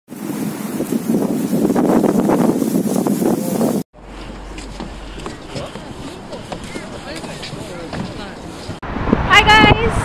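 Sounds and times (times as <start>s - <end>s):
strong wind buffeting microphone: 0.1s - 10.0s.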